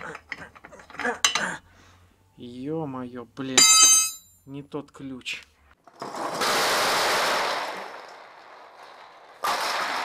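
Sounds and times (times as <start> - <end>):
wrench clinking on metal: 1.2 - 1.6, 3.6 - 4.4.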